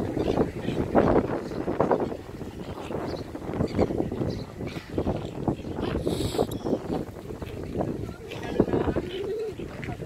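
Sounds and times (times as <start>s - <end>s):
wind buffeting microphone: 0.0s - 10.0s
people talking: 7.5s - 10.0s.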